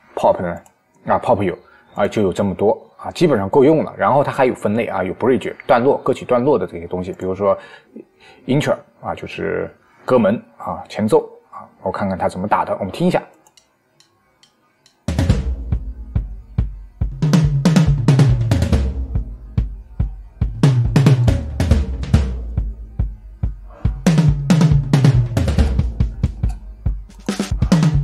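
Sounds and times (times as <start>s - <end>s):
drum kit playing pop groove: 15.1s - 28.0s.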